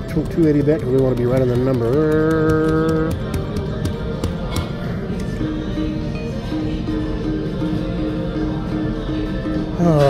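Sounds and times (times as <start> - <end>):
music: 0.0 - 10.0
casino din: 0.1 - 4.5.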